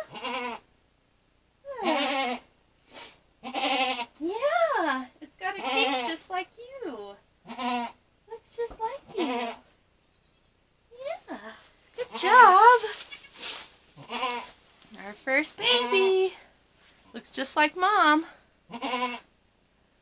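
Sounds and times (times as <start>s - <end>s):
goats bleating: 5.6s - 6.2s, 14.0s - 14.6s, 18.7s - 19.2s.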